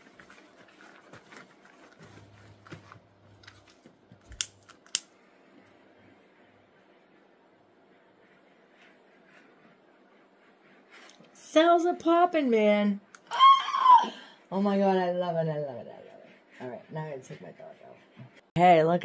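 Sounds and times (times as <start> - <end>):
torch igniter clicks: 4.3 - 5.1.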